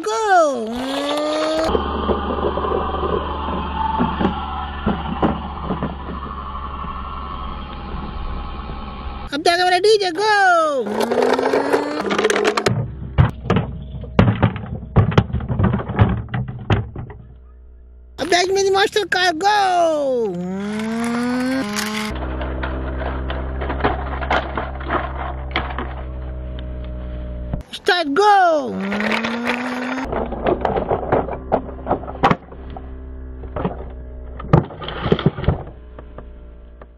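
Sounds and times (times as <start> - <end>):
toy truck rattling on stones: 0.6 - 3.9, 10.9 - 17.0, 20.2 - 26.6, 28.7 - 32.8
heavy knocks of truck tumbling: 11.0 - 17.7, 22.2 - 26.6, 29.0 - 36.9.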